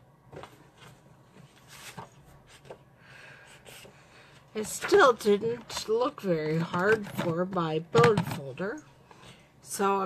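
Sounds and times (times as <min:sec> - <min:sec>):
paper sliding rustle: 0:00.4 - 0:02.8.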